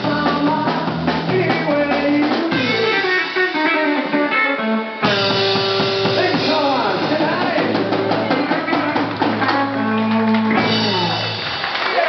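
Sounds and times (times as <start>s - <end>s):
electric guitar notes: 0.0s - 11.7s
rockabilly band playing: 0.0s - 12.0s.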